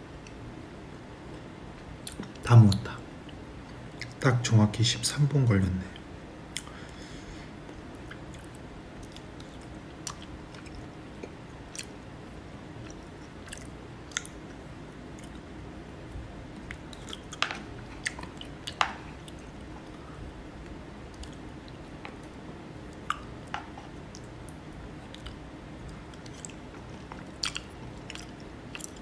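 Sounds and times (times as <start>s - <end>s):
low background hum: 0.0s - 29.0s
person chewing: 6.5s - 6.8s, 7.9s - 12.0s, 12.8s - 15.5s, 16.6s - 29.0s.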